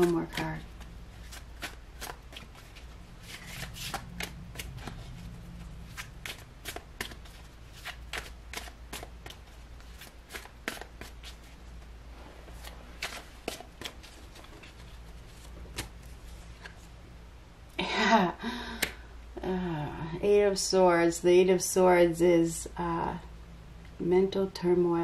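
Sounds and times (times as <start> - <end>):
cards being shuffled: 0.0 - 16.9.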